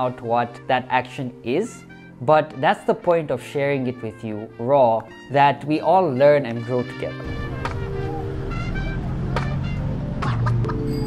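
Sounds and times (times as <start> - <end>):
street traffic rumble: 7.2 - 11.0.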